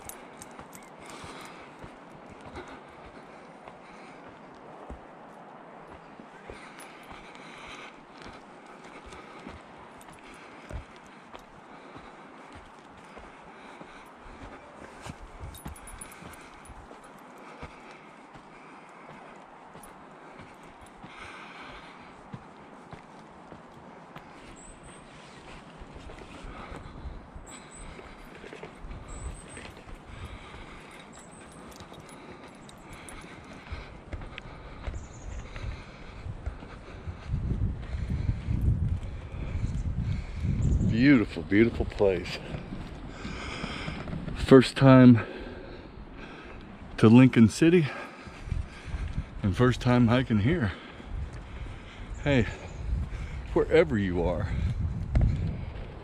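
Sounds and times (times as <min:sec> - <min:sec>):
footsteps on dirt trail: 0:00.0 - 0:56.0.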